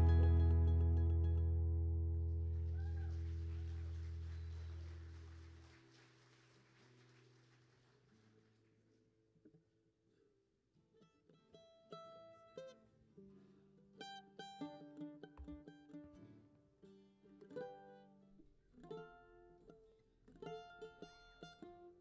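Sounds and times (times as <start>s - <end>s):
guitar picked slowly: 0.0s - 5.0s, 11.4s - 22.0s.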